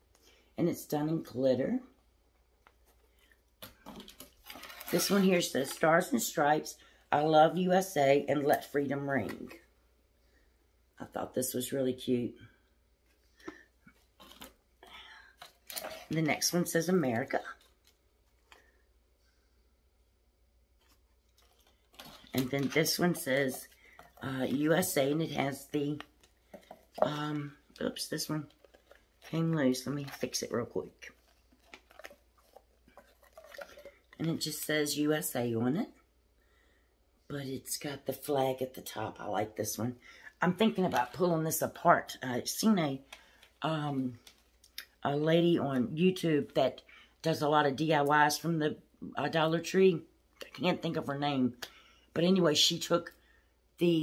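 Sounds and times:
person speaking: 0:00.6 - 0:02.0, 0:04.6 - 0:09.7, 0:11.0 - 0:12.6, 0:14.3 - 0:17.9, 0:22.0 - 0:36.0, 0:37.3 - 0:53.1.

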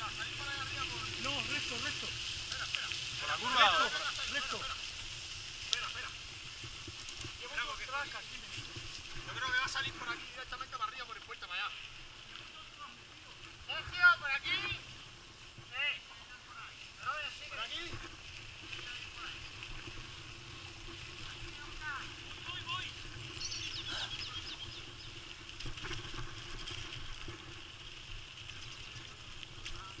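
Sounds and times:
bike tyres rumbling on dirt: 0:00.0 - 0:10.9, 0:16.9 - 0:30.0.

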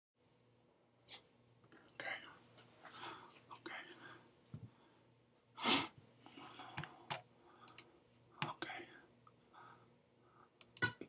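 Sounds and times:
man whispering: 0:01.8 - 0:02.4, 0:03.4 - 0:04.3, 0:08.3 - 0:09.2.

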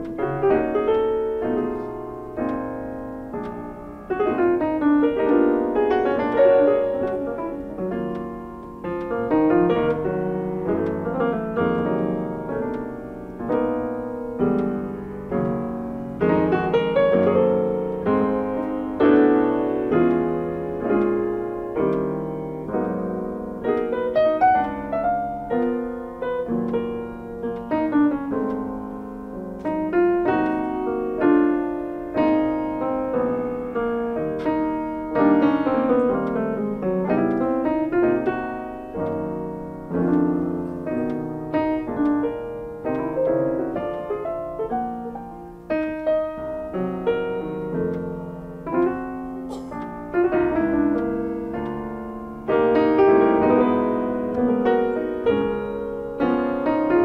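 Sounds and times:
two pianos playing: 0:00.0 - 0:57.0.

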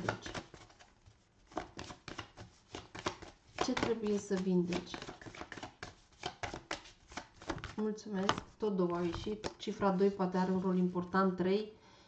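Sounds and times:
cards being shuffled: 0:00.0 - 0:10.7.

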